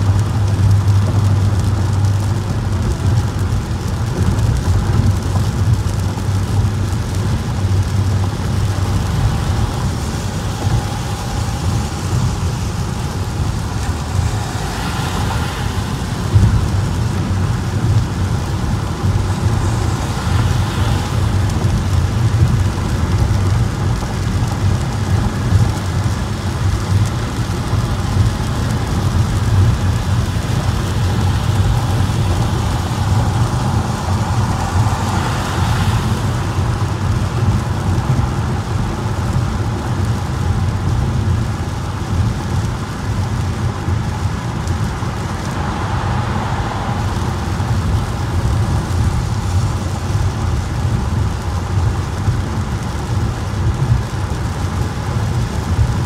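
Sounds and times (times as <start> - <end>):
low road noise rumble: 0.0 - 56.0
rain drumming on a car: 0.0 - 56.0
tyres hissing on wet road: 0.0 - 56.0.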